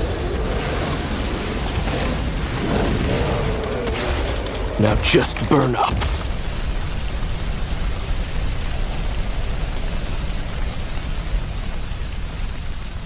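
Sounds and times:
cartoon flames crackling: 0:00.0 - 0:13.0.

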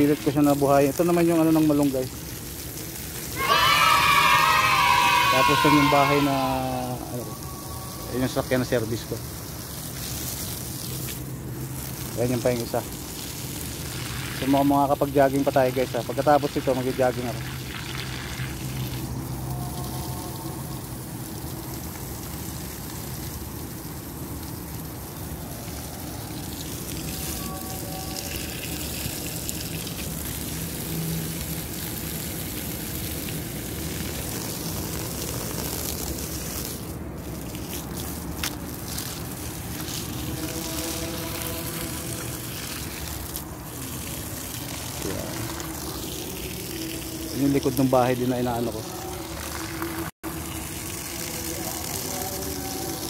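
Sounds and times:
garden hose spraying water: 0:00.0 - 0:53.0.

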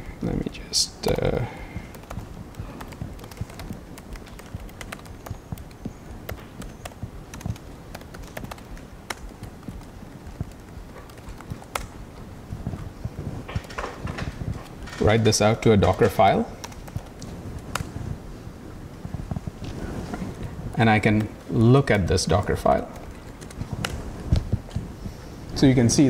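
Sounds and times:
laptop keyboard clicks: 0:01.8 - 0:12.0, 0:13.4 - 0:15.0, 0:15.8 - 0:17.9, 0:22.9 - 0:24.8.

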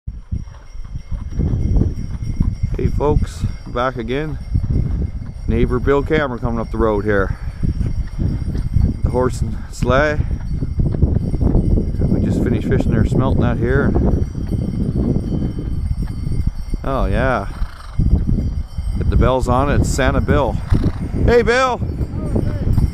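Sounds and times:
horse hooves clip-clopping: 0:00.1 - 0:21.2
wind buffeting microphone: 0:00.1 - 0:22.9.

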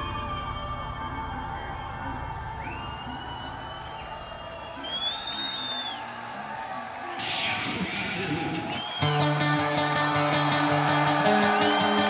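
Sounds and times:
high whistle: 0:00.0 - 0:06.2, 0:08.4 - 0:12.0
audience cheering: 0:01.2 - 0:12.0.

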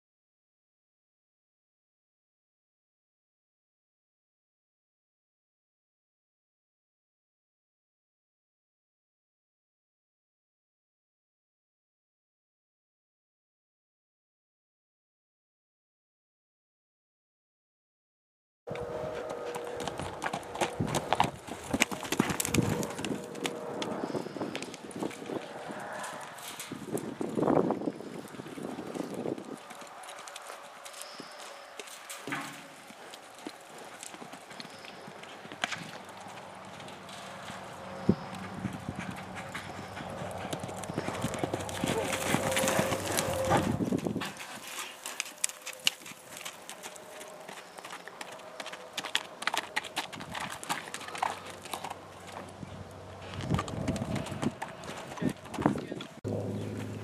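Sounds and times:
horse hooves on soft dirt: 0:18.7 - 0:57.0.

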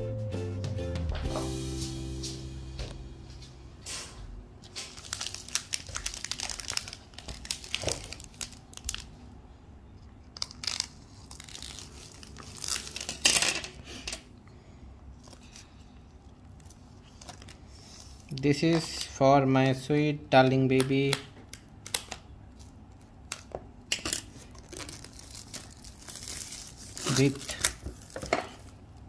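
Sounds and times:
background music: 0:00.0 - 0:03.8
plastic wrapping crinkling: 0:04.6 - 0:09.4, 0:10.2 - 0:13.4, 0:15.1 - 0:19.2, 0:24.2 - 0:29.0.

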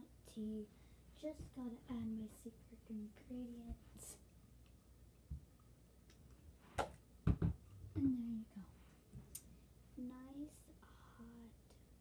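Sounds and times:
plastic cup and bottle knocks: 0:07.2 - 0:07.6.

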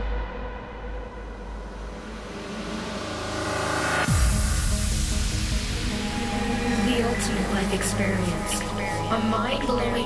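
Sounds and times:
noise wash: 0:00.0 - 0:10.0
sustained synth chords: 0:00.1 - 0:10.0.

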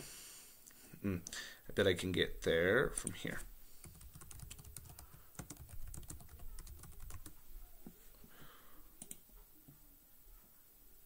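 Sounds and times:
faint computer keyboard typing: 0:03.0 - 0:07.4, 0:09.0 - 0:09.2.

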